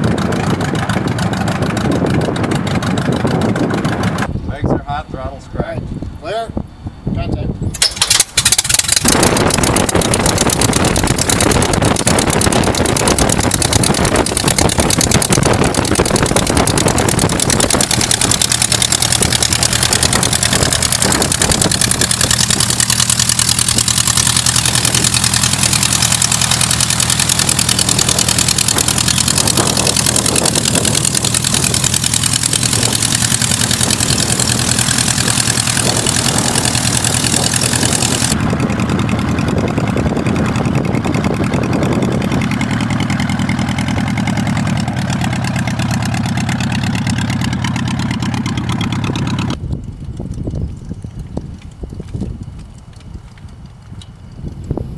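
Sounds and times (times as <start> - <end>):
engine humming: 0.0 - 4.8, 5.8 - 54.9.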